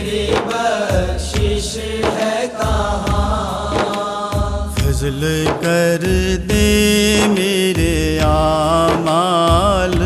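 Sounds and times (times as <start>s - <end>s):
devotional singing: 0.0s - 10.0s.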